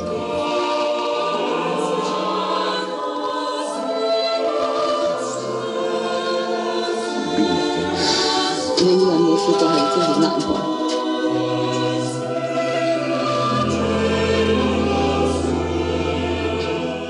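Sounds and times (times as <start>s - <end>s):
choir singing sustained chords: 0.0s - 17.0s.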